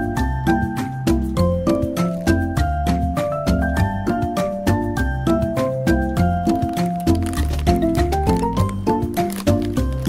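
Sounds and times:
instrumental music with beat: 0.0s - 10.0s.

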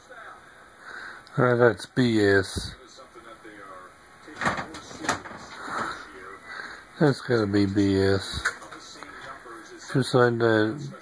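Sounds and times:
commentator's voice through tv speaker: 0.0s - 11.0s.

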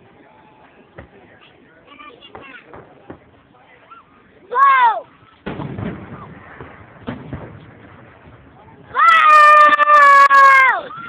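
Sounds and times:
firework shells bursting: 5.3s - 8.7s
firework whoop: 5.6s - 7.6s, 8.8s - 11.0s.

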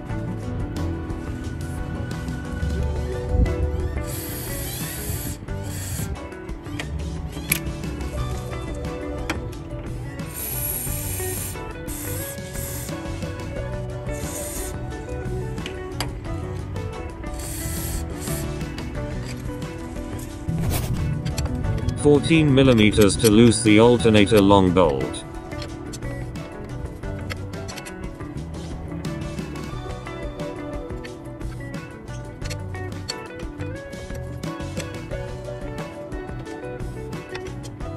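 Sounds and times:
background music: 0.0s - 37.9s
aerosol spray hissing: 4.0s - 6.1s, 10.3s - 13.0s, 17.4s - 18.7s.

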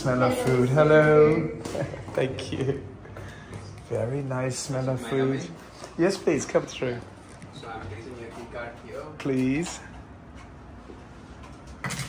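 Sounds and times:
room background noise: 0.0s - 12.0s.

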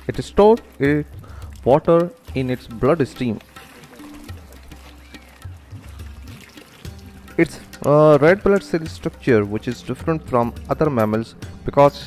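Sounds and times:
water trickling and lapping: 0.0s - 11.5s
soft background music: 0.0s - 12.0s.

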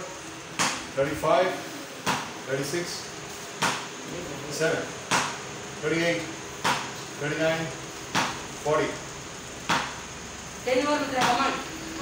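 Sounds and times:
cricket bat striking ball: 5.1s - 5.4s, 8.1s - 8.4s, 9.6s - 10.0s.

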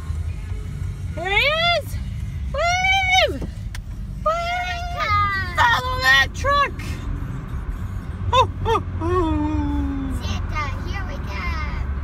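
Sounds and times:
car interior rumble: 0.0s - 12.0s.

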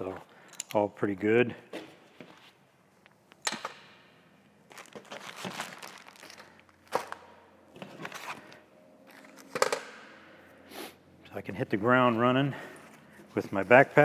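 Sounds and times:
plastic packets crinkling: 4.6s - 7.3s.

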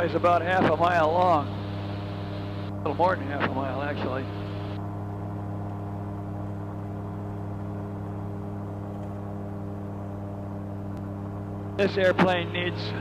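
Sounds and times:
aircraft engine and propeller drone: 0.0s - 13.0s.

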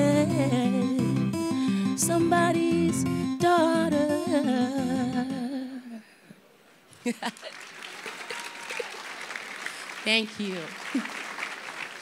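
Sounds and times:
instrumental chords: 0.0s - 5.5s
woman singing wordless line: 0.0s - 6.1s.

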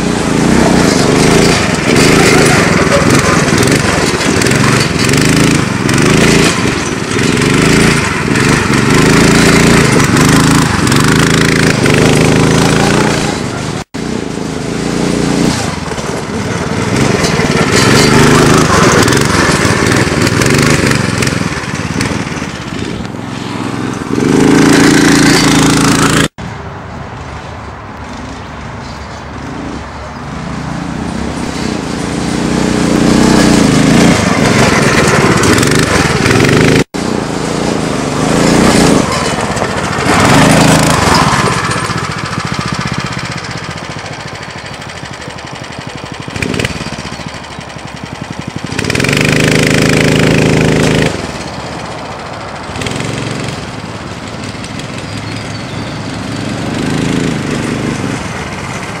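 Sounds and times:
buggy engine revving: 0.0s - 26.4s, 28.0s - 59.0s.

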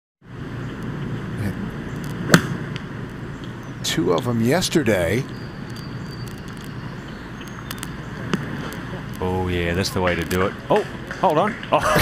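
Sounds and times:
steady outdoor hiss: 0.2s - 12.0s
faint clicks: 7.4s - 9.2s.

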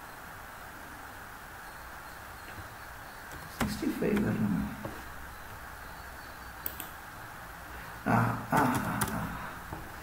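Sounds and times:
sharp clicks: 6.6s - 7.0s
man making wordless sounds: 8.0s - 9.8s.

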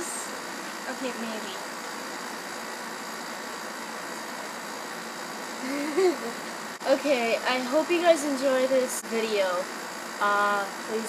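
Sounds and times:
steady background hiss: 0.0s - 11.0s
girl laughing: 5.6s - 6.5s.

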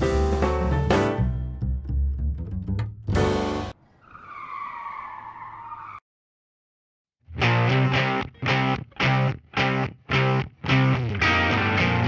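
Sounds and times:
upbeat music with plucked bass: 0.0s - 3.7s, 7.3s - 12.0s
tyre squeal screech: 3.9s - 6.0s.

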